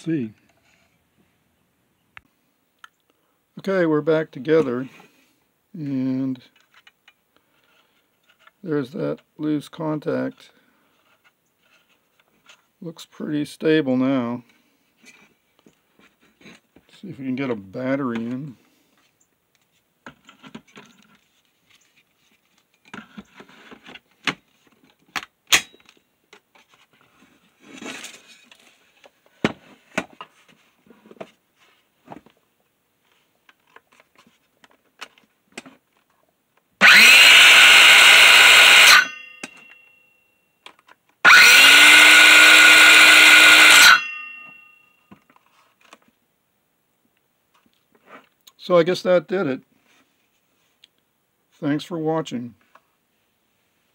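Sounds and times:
cordless circular saw motor: 0:36.8 - 0:39.8, 0:41.2 - 0:44.7.

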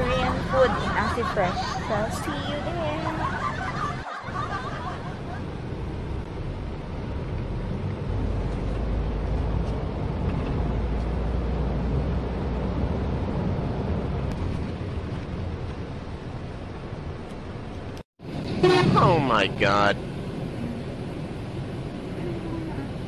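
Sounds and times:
vehicle engine and road rumble: 0:00.0 - 0:23.0.

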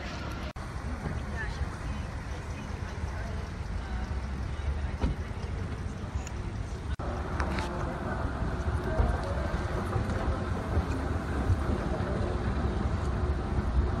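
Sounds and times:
faint voices: 0:00.0 - 0:14.0.

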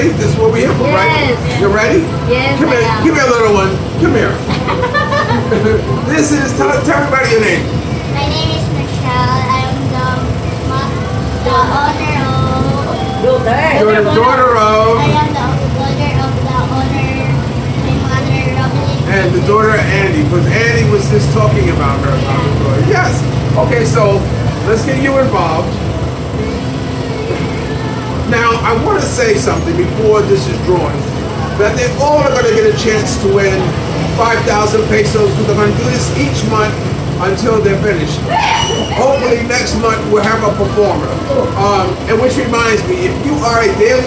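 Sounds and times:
low background hum: 0:00.0 - 0:44.0
low background rumble: 0:00.0 - 0:44.0.

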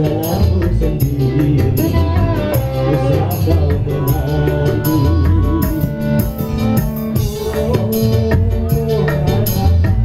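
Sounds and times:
drums: 0:00.0 - 0:10.0
electronic keyboard: 0:00.0 - 0:10.0.

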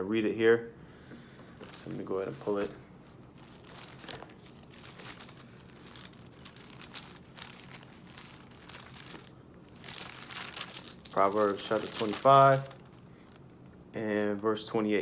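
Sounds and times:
paper pages rustling: 0:03.4 - 0:13.4.

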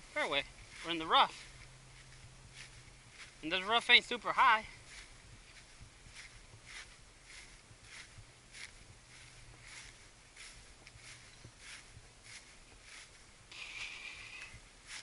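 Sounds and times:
footsteps on grass: 0:00.0 - 0:15.0
low steady hum: 0:00.0 - 0:15.0.

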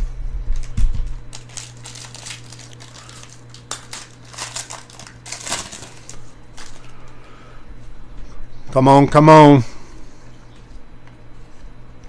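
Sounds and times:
steady low hum: 0:00.0 - 0:12.0
plastic wrapper crinkling: 0:00.6 - 0:07.0.

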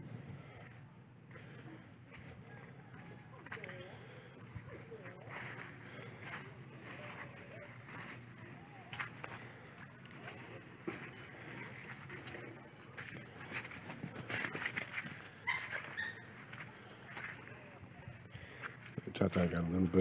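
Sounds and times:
footsteps through grass: 0:00.1 - 0:20.0.

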